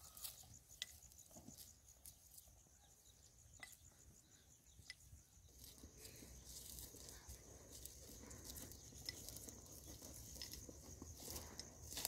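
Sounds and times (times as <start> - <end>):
footsteps crunching on stubble: 0.0 - 2.6, 5.4 - 12.0
high insect chirring: 0.0 - 12.0.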